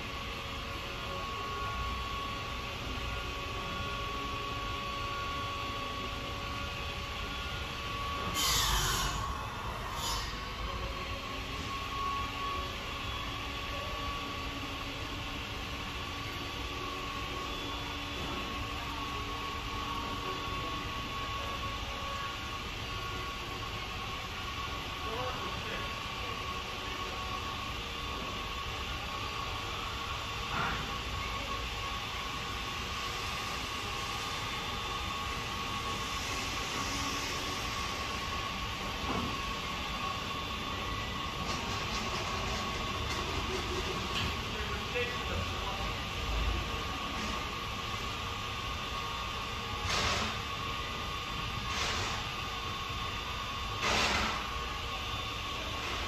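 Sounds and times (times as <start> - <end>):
constant hum and hiss: 0.0 - 56.0.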